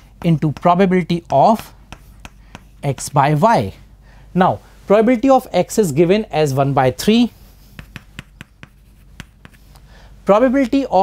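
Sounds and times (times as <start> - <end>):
chalk tapping and scraping: 0.0 - 3.8, 7.2 - 10.8.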